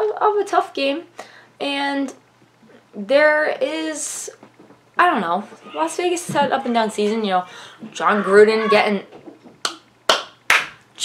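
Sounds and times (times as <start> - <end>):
sharp hand claps: 9.6 - 10.8.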